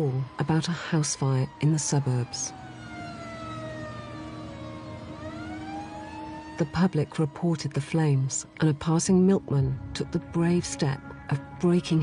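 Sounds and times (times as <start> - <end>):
fire engine siren wailing: 0.0 - 12.0.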